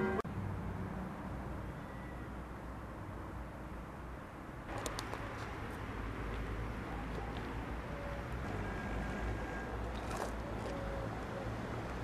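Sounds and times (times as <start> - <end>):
street rumble: 0.0 - 12.0.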